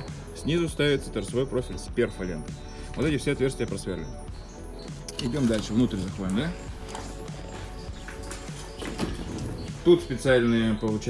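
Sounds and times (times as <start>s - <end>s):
background music sustained tones: 0.0s - 11.0s.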